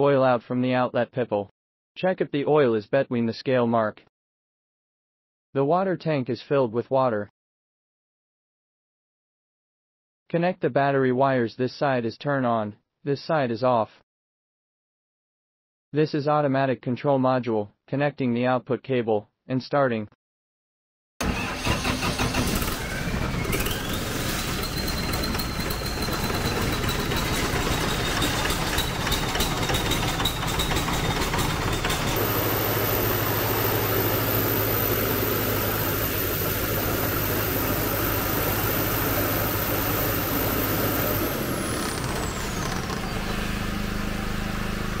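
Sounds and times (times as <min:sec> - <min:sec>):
diesel generator engine running: 0:21.2 - 0:45.0
rising whine: 0:22.5 - 0:45.0.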